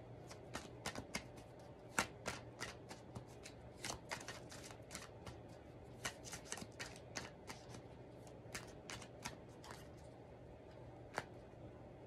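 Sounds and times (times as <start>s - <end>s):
cards being shuffled: 0.2s - 10.1s.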